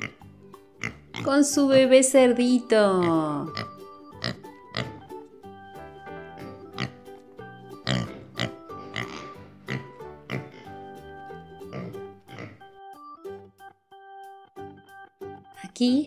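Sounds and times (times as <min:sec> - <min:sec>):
pig oinking and grunting: 0:00.0 - 0:01.4, 0:03.0 - 0:05.1, 0:06.3 - 0:07.1, 0:07.8 - 0:10.9, 0:11.6 - 0:12.7
background music: 0:00.0 - 0:16.0.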